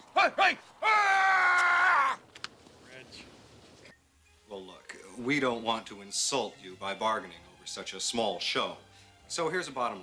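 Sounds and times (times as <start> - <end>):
person shouting: 0.2 - 2.2.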